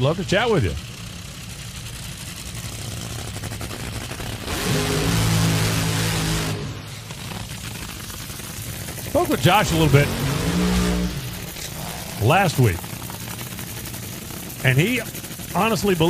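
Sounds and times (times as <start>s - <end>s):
dragster engine idling: 0.0s - 16.0s.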